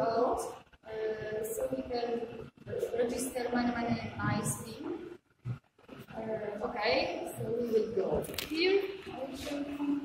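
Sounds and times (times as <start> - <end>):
people talking: 0.0 - 5.1, 6.1 - 10.0.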